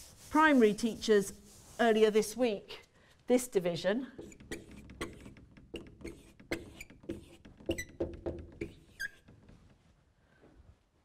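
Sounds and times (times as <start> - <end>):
marker squeaks: 4.2 - 9.5
marker writing on whiteboard: 4.2 - 9.5.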